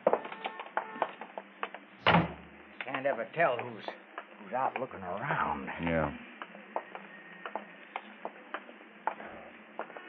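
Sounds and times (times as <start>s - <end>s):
light clicking footsteps: 6.4s - 10.0s.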